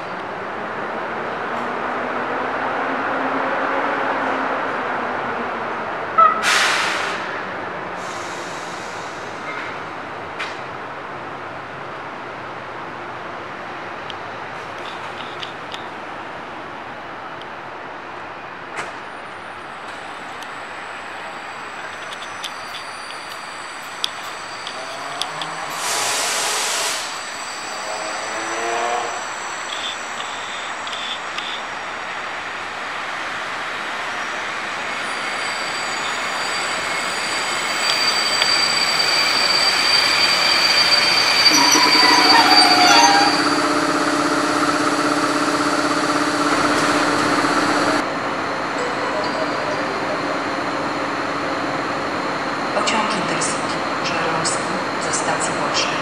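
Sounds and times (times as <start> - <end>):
train running noise: 6.0 - 56.0
high squeal: 19.4 - 32.2, 34.1 - 48.0
air hissing: 24.1 - 28.0
humming tones: 40.2 - 48.0.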